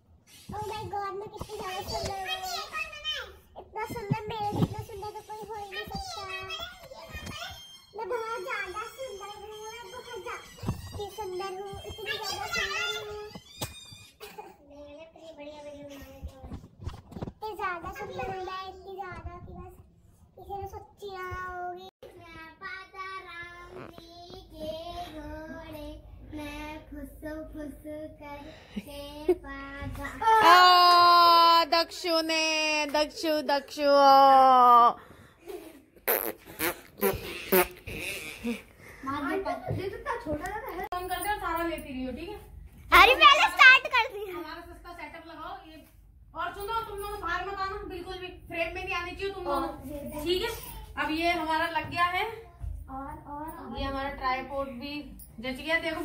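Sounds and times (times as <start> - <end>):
child blowing raspberry: 36.0 - 38.7.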